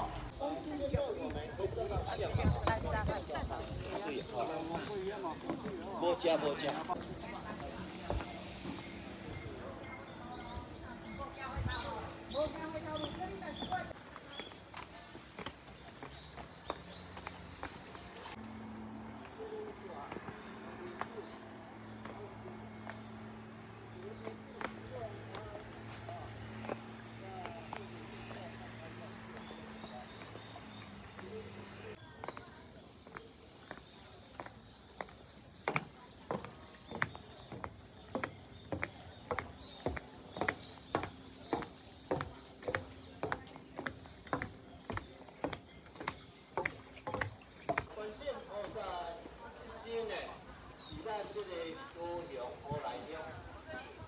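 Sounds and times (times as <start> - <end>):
cicadas singing: 0.0 - 54.0
footsteps tapping: 12.4 - 47.9.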